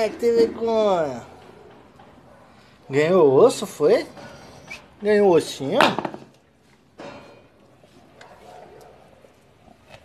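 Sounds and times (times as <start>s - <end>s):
bone knocking on tiled floor: 5.8s - 6.3s.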